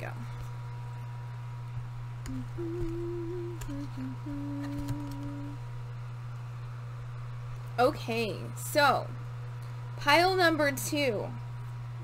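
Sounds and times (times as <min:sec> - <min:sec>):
woman humming low notes: 0:02.2 - 0:05.7.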